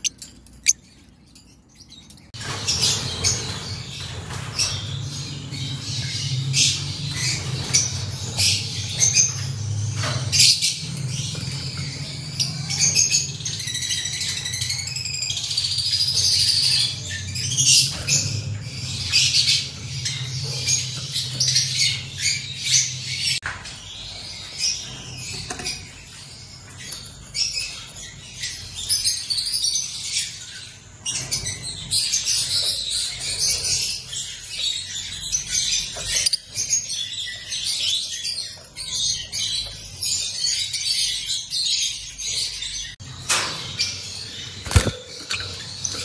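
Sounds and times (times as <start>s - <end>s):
lovebirds chirping: 0.0s - 2.6s.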